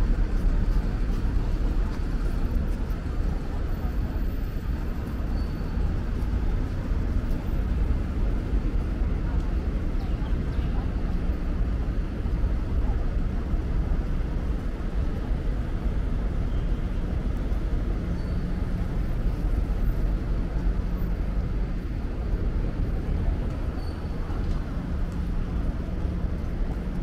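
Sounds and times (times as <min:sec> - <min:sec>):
low rumble of road traffic: 0:00.0 - 0:27.0.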